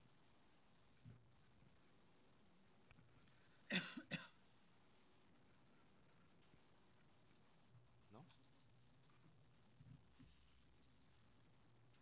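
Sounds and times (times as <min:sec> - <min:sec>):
person coughing: 0:03.7 - 0:04.4.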